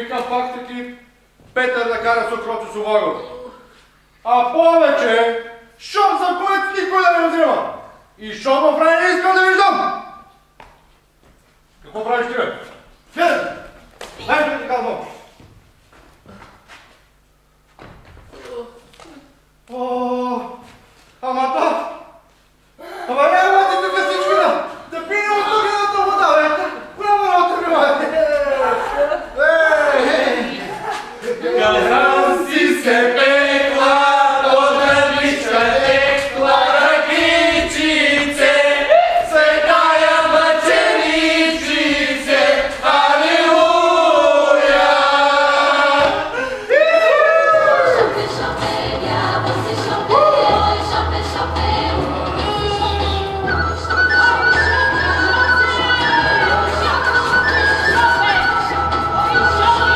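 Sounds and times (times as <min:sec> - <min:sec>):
knocks and rustles on stage: 0:15.4 - 0:19.1
group of voices singing: 0:30.0 - 0:46.7, 0:47.4 - 0:59.9.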